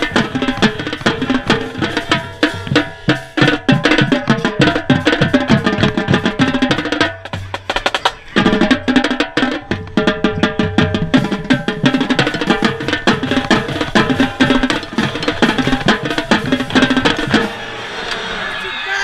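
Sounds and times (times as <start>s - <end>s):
tenor drums struck rapidly: 0.0s - 17.9s
marching band wind instruments: 0.0s - 19.0s.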